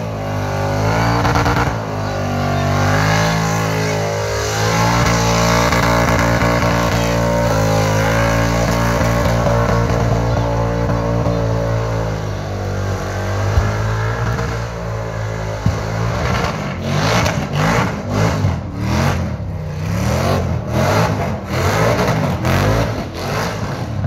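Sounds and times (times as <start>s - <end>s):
car engine revving: 0.0s - 24.0s.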